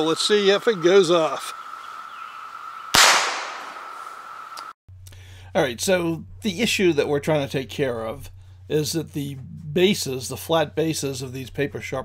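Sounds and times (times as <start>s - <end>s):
rifle shot with echo: 2.9s - 4.0s.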